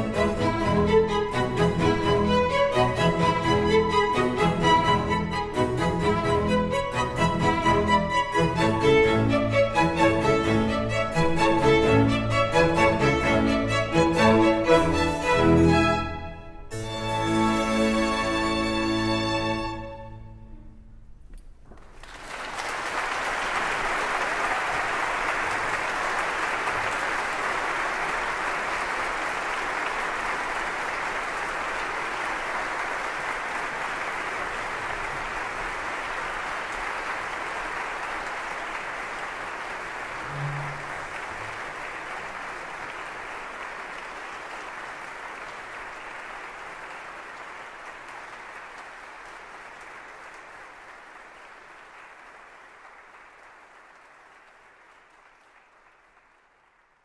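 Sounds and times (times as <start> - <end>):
audience applauding: 21.7 - 57.0.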